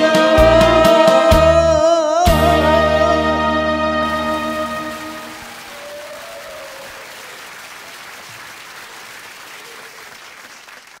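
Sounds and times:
applause: 4.2 - 11.0.

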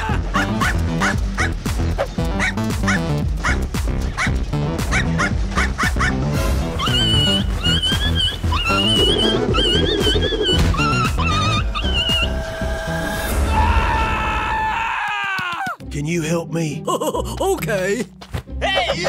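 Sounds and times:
background music with steady beat: 0.0 - 13.0
dog yipping: 6.8 - 12.4.

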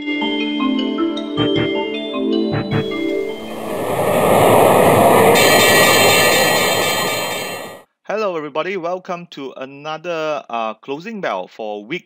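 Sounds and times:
rush of noise: 2.7 - 7.8
steady high ringing: 2.8 - 7.8.

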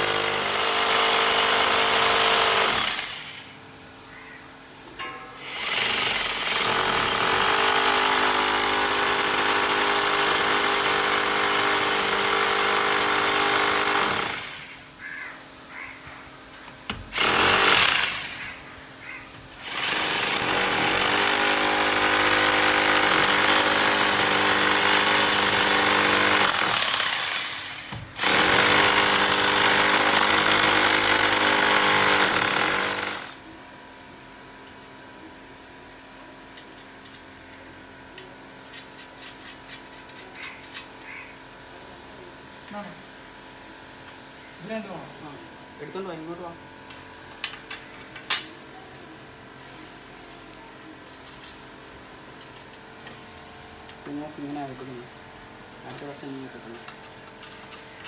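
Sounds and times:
hammer drill boring into wall: 0.0 - 3.4, 5.4 - 14.8, 16.9 - 18.5, 19.6 - 33.4.

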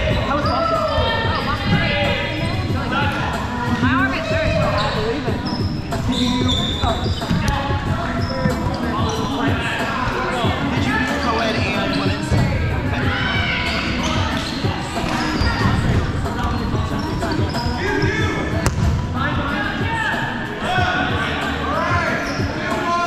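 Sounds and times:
balls bouncing on wooden floor: 14.1 - 19.0.

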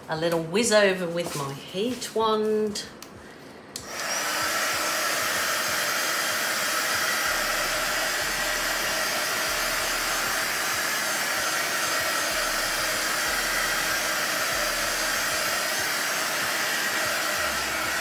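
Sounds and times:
heat wand fan blowing: 0.0 - 18.0.

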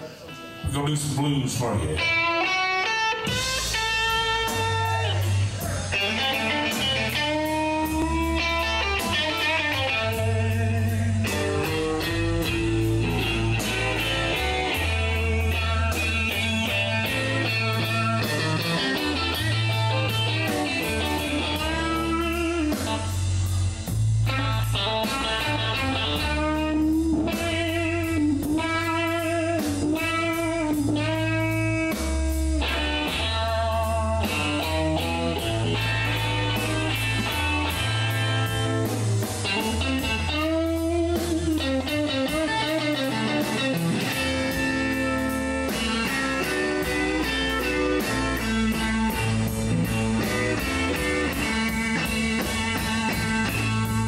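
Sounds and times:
blues band playing: 0.0 - 54.0
electric guitar lead lines: 0.0 - 54.0
bass notes: 3.2 - 54.0
steady drum beat: 3.2 - 54.0.

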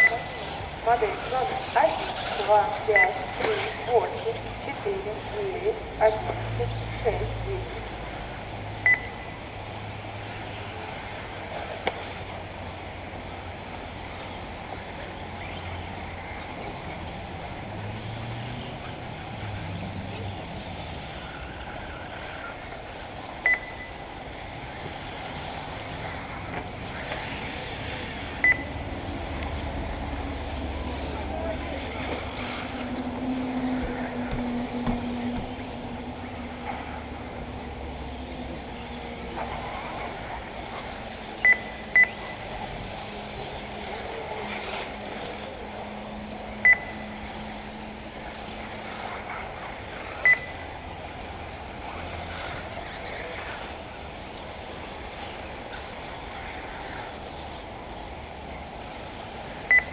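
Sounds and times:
short electronic beeps: 0.0 - 0.4, 2.9 - 3.3, 8.8 - 9.4, 23.4 - 24.0, 28.4 - 28.8, 41.4 - 42.4, 46.6 - 47.1, 50.2 - 50.6, 59.7 - 59.9
faint voices: 0.0 - 8.7, 9.4 - 59.6
outdoor background noise: 0.0 - 59.9.

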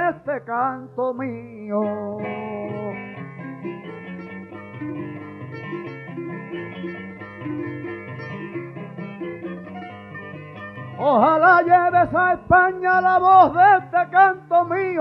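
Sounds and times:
plucked guitar melody: 0.0 - 15.0.

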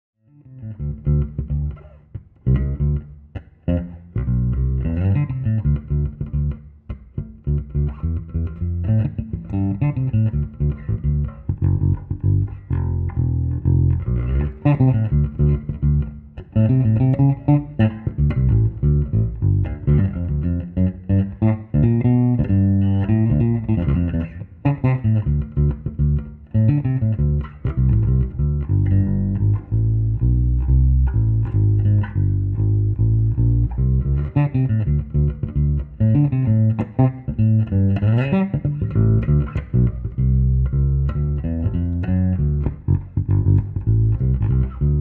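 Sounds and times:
electric bass plucked notes: 0.3 - 45.0.

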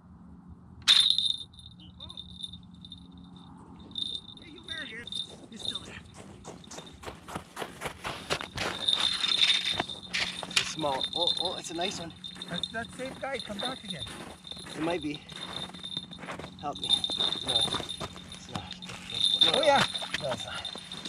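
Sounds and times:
crunching in snow and ice: 4.7 - 21.0.

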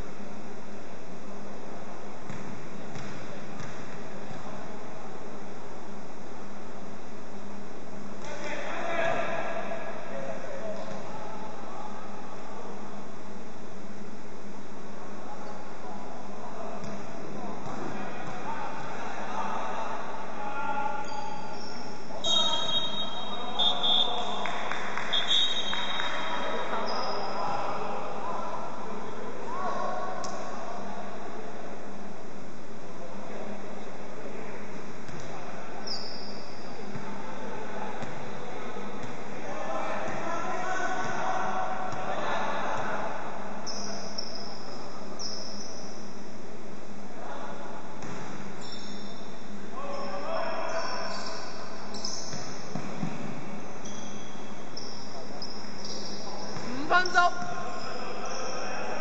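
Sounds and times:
background chatter in hall: 0.0 - 59.0
basketball bouncing: 2.3 - 3.9.

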